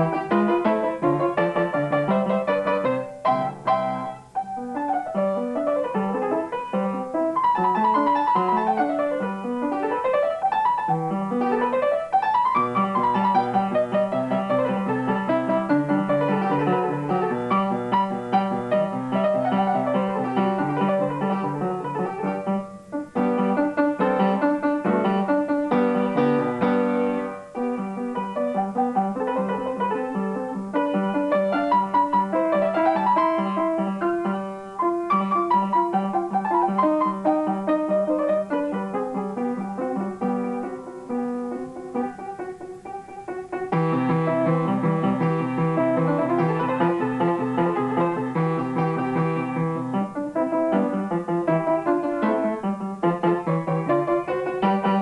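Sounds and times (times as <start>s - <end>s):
upright piano playing: 0.0s - 55.0s.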